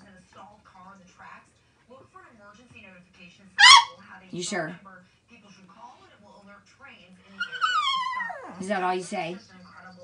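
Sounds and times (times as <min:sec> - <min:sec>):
small dog whining: 0:07.4 - 0:08.6.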